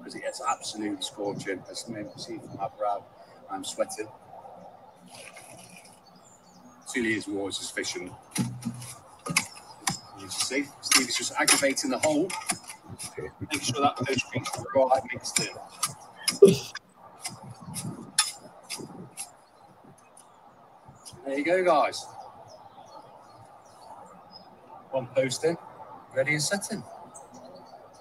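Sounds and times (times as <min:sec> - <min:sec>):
faint bird chirp: 0:00.0 - 0:28.0
soft outdoor hiss: 0:00.0 - 0:28.0.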